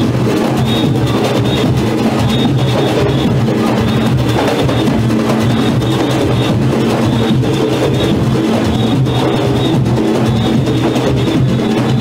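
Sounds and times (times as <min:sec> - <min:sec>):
goatskin drums driving rhythm: 0:00.0 - 0:12.0.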